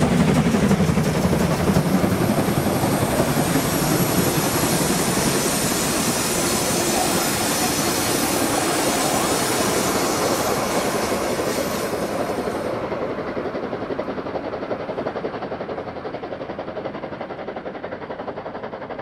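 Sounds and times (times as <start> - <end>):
train wheels rumbling and clattering: 0.0 - 19.0.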